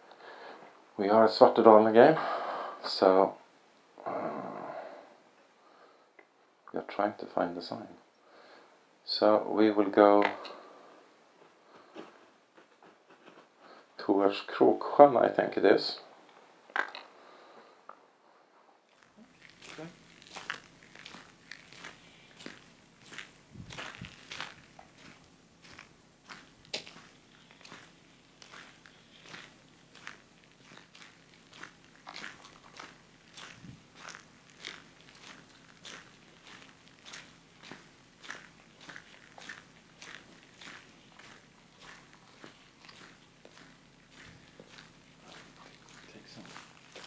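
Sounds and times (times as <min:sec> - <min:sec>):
footsteps on gravel: 0:19.0 - 0:47.0.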